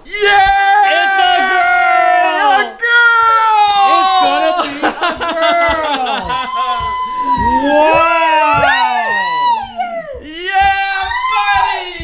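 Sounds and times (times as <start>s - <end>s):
people cheering and squealing: 0.0s - 12.0s.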